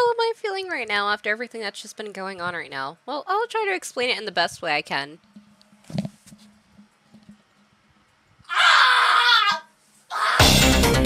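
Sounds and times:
person screaming: 8.5 - 10.6.

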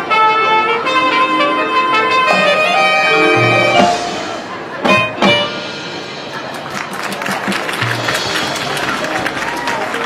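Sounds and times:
marching band music: 0.0 - 10.0.

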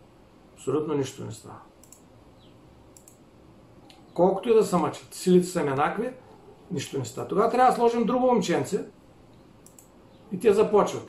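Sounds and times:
low steady hiss: 0.0 - 11.0
computer mouse clicks: 1.8 - 3.2, 9.3 - 10.0.

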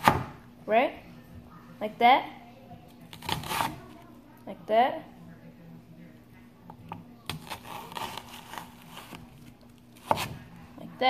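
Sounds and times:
knife slicing onion: 3.1 - 4.0, 7.3 - 10.4.

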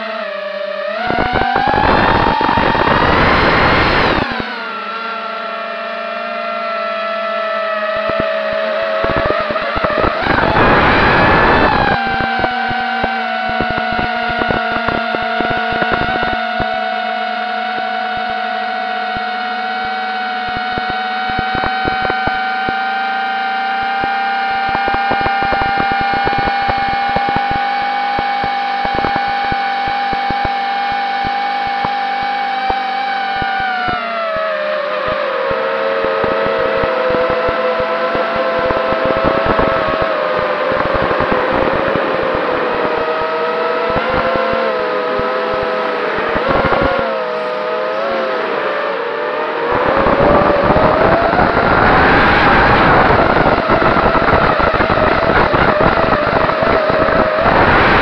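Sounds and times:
drone motors whining: 0.0 - 58.0
sharp clicks: 8.0 - 16.8, 20.4 - 22.8, 23.8 - 47.1.

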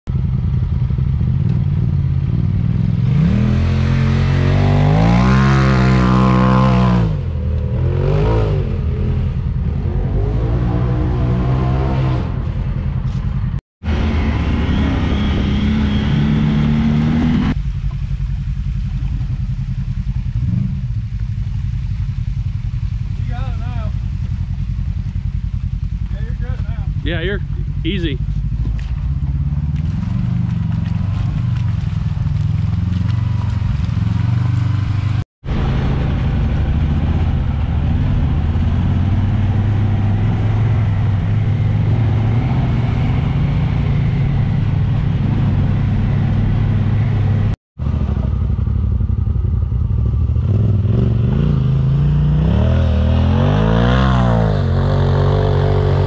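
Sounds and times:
utility vehicle engines revving: 0.1 - 56.0.

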